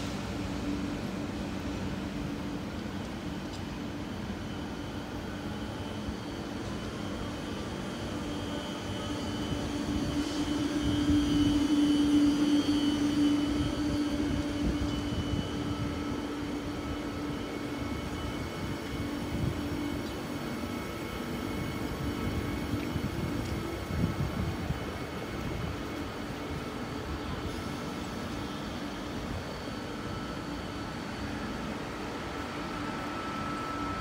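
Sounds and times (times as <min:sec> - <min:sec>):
passenger train moving on track: 0:00.0 - 0:34.0.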